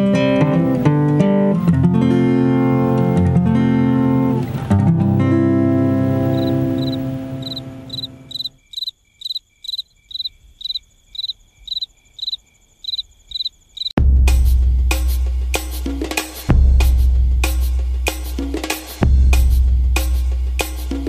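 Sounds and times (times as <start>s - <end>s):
acoustic guitar chord strummed: 0.0s - 8.3s
crickets chirping: 1.6s - 3.2s, 3.8s - 14.0s
loud music: 14.0s - 21.0s.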